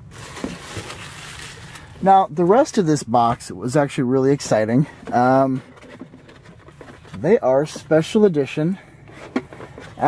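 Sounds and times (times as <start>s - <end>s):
packaging rustling: 0.0s - 1.9s.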